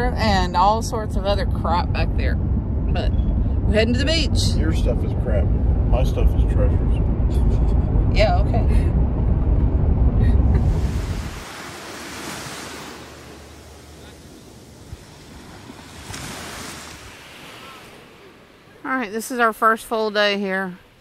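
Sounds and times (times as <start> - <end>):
road rumble inside car: 0.0 - 11.5
small waves on sandy shore: 10.6 - 19.4.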